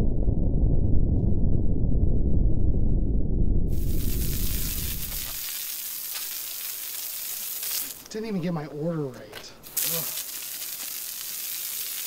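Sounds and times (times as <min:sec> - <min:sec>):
hose nozzle spraying water: 0:03.8 - 0:08.1, 0:09.6 - 0:12.0.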